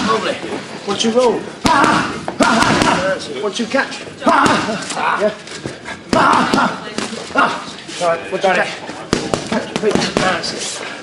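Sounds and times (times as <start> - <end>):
voices in gym: 0.0 - 11.0
punches slapping on pads: 1.6 - 3.2, 6.1 - 7.1, 9.1 - 10.4.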